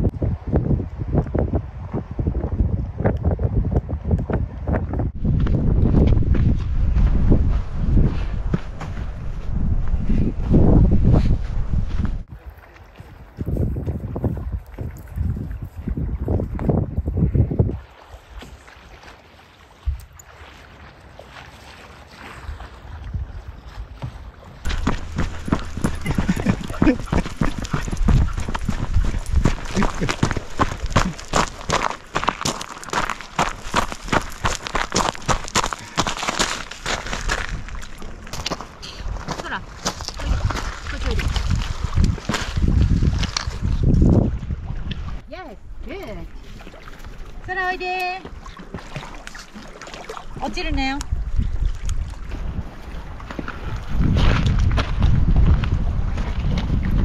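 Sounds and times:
gusty wind on microphone: 0:00.0 - 0:12.4, 0:13.1 - 0:18.5, 0:24.6 - 0:48.5, 0:50.2 - 0:57.0
footsteps crunching on gravel: 0:24.6 - 0:43.8.

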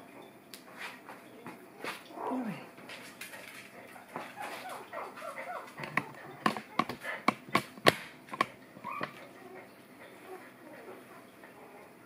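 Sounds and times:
puppy whining cry: 0:08.8 - 0:09.7.

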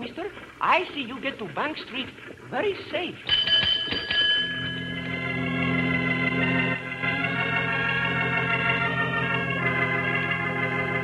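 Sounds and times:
small bell ringing: 0:03.3 - 0:05.1
organ chord: 0:04.6 - 0:11.0.

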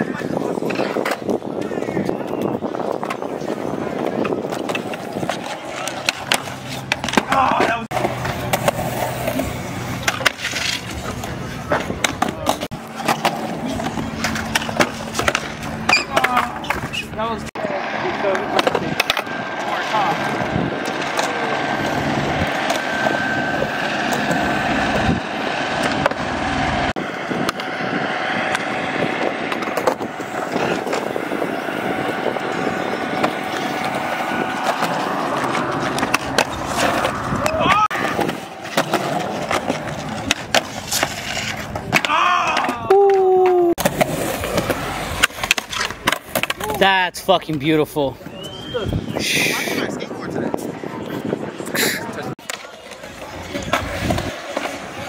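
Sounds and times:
skateboard clacking and grinding: 0:00.0 - 0:47.7, 0:50.5 - 0:55.0
skateboard wheels rolling on concrete: 0:00.0 - 0:55.0.

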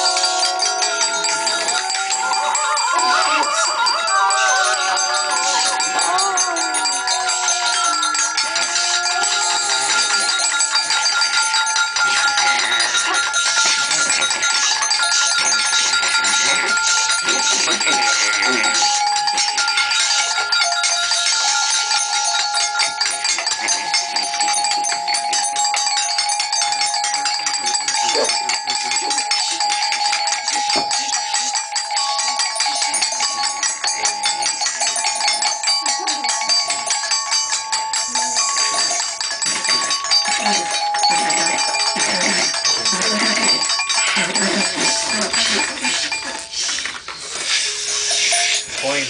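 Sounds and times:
wordless voices: 0:00.0 - 0:11.0, 0:11.9 - 0:23.0, 0:26.7 - 0:31.7, 0:40.2 - 0:49.0
held tones: 0:00.0 - 0:49.0.

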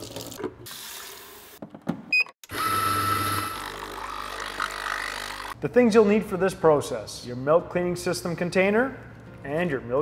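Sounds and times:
coffee machine humming and whining: 0:02.5 - 0:05.4.

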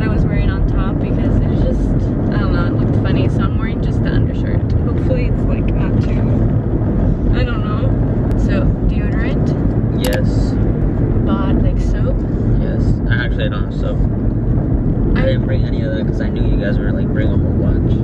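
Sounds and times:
woman talking: 0:00.0 - 0:06.5, 0:07.3 - 0:10.4, 0:11.3 - 0:12.4
car cabin road rumble: 0:00.0 - 0:18.0.

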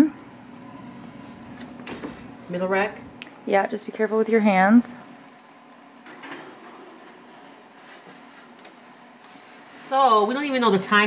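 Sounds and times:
low steady hum: 0:00.0 - 0:11.0
baking tray on metal rack: 0:06.0 - 0:10.9.

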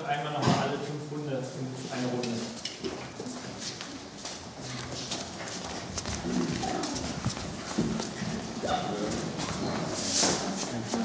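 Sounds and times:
footsteps on tiled floor: 0:02.0 - 0:11.0.

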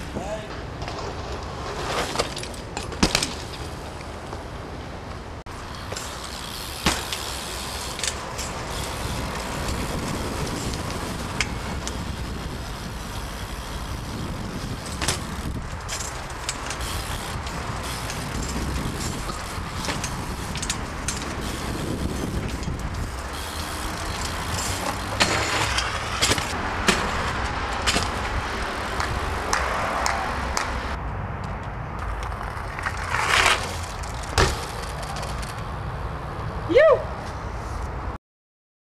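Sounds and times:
bike rolling over concrete: 0:00.2 - 0:35.9.

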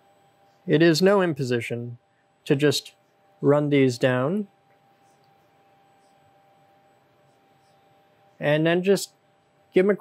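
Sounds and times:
faint steady tone: 0:00.0 - 0:01.3, 0:01.9 - 0:10.0.

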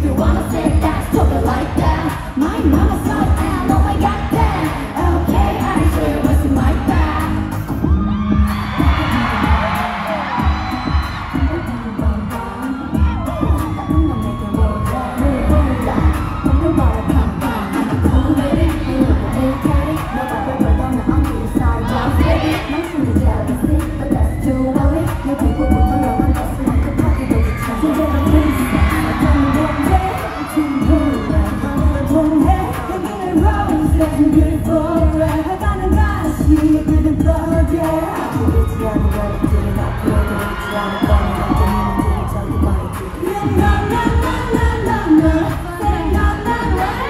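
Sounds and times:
pop song through loudspeakers: 0:00.0 - 0:47.0
woman singing into a microphone: 0:00.0 - 0:47.0
heavy bass kick: 0:07.8 - 0:09.7.

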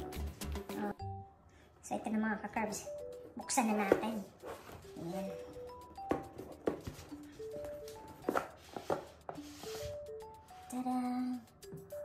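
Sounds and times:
simple melody of short notes: 0:00.0 - 0:01.4, 0:02.8 - 0:12.0.

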